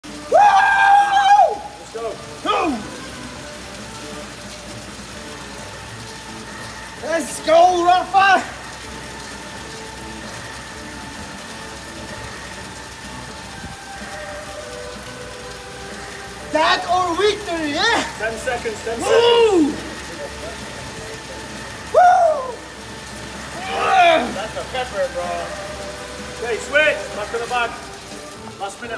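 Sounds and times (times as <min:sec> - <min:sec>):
background hiss: 0:00.0 - 0:28.9
man whooping: 0:00.2 - 0:03.0, 0:18.9 - 0:20.0, 0:21.9 - 0:22.7, 0:23.6 - 0:24.4
man shouting: 0:00.3 - 0:03.0, 0:07.0 - 0:08.6, 0:16.6 - 0:20.0, 0:21.9 - 0:22.7, 0:23.6 - 0:24.6.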